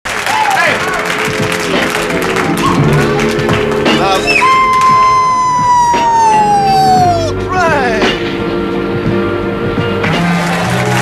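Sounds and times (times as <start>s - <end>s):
upbeat theme music: 0.1s - 11.0s
announcer shouting: 4.1s - 8.2s.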